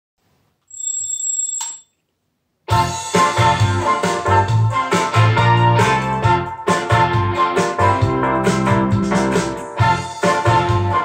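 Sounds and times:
alarm clock ringing: 0.7s - 1.9s.

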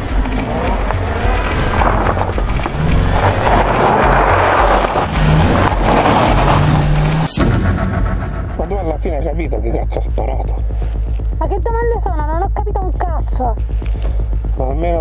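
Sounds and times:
car wheels spinning on gravel: 0.0s - 7.2s
background music: 0.0s - 15.0s
car engine running: 0.0s - 15.0s.

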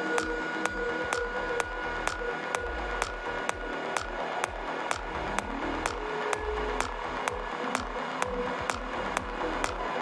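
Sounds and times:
rolling low bassline: 0.0s - 9.9s
four-on-the-floor beat: 0.2s - 9.9s.

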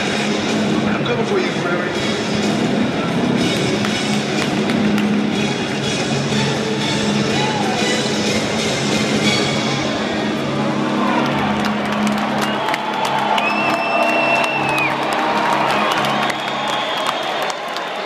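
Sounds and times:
loud music over sound system: 0.0s - 12.0s
arena crowd cheering: 7.2s - 8.1s, 10.4s - 18.0s
high whistle: 13.4s - 15.0s, 16.2s - 17.5s.

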